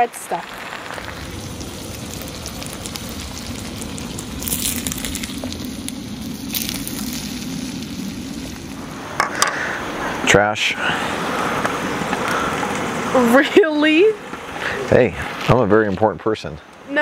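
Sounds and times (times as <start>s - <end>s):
fish sizzling in butter: 0.0s - 16.0s.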